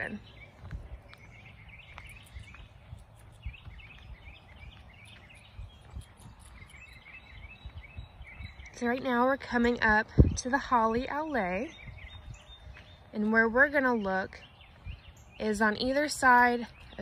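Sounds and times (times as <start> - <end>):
footsteps: 0.0 - 7.0
small birds chirping: 0.0 - 17.0.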